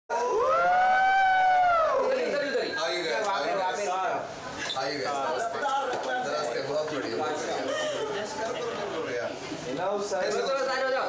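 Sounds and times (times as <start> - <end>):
person cheering whoo: 0.1 - 2.1.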